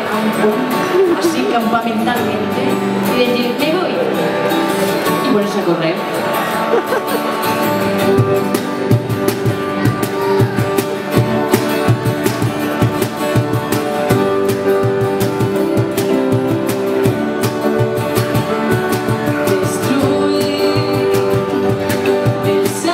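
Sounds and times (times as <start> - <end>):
acoustic guitars strumming: 0.0 - 22.9
woman singing into a microphone: 19.2 - 22.9.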